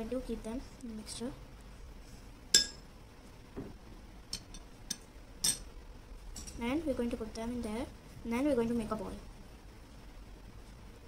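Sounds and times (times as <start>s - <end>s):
metal spoon clinking on ceramic plate: 2.6s - 2.8s, 4.4s - 5.7s.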